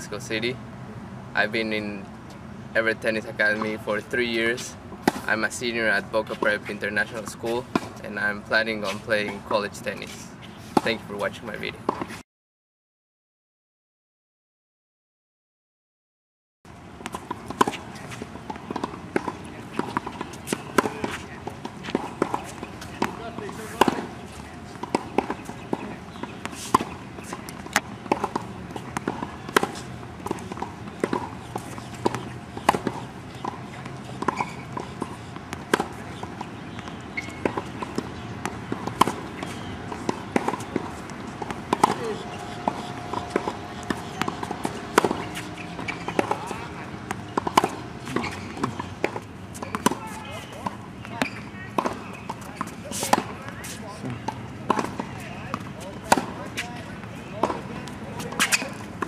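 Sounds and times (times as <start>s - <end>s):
tennis ball bouncing on hard court: 5.0s - 8.0s, 17.0s - 59.0s.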